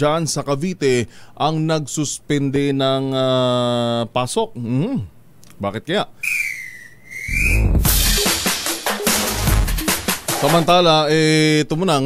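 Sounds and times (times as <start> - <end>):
whistle-like tone with hiss: 6.2 - 8.0
drum-led music sting: 7.3 - 10.7.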